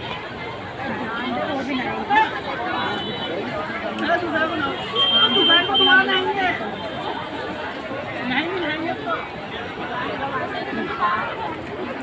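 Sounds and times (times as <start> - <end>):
people chattering and calling out: 0.0 - 12.0.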